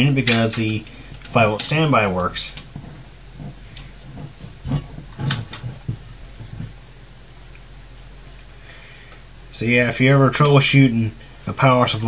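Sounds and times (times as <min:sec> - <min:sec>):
circuit board and wiring handled: 0:00.0 - 0:06.8
faint steady low hum: 0:00.0 - 0:12.0.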